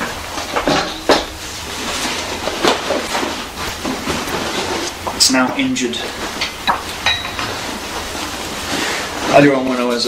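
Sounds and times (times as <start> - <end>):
backpack fabric rustling: 1.4 - 10.0.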